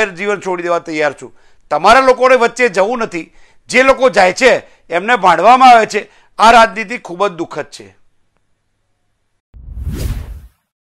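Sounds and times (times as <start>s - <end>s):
whoosh with deep rumble: 9.6s - 10.6s.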